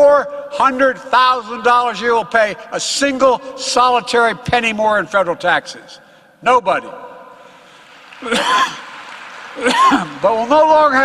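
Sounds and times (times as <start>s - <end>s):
man clearing throat cough: 8.2s - 8.9s, 9.6s - 10.2s.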